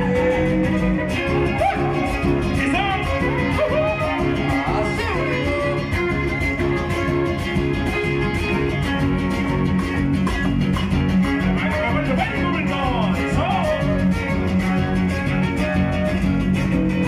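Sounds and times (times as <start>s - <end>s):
guitar trio playing dance music: 0.0s - 17.0s.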